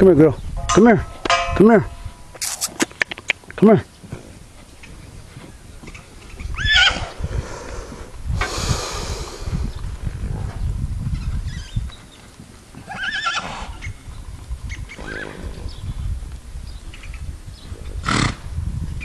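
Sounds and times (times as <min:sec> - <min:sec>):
horse whinnying: 0:06.5 - 0:07.2, 0:12.8 - 0:13.8, 0:14.9 - 0:15.6.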